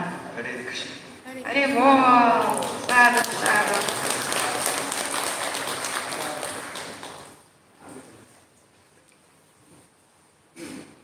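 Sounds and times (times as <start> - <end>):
audience clapping: 2.4 - 7.4.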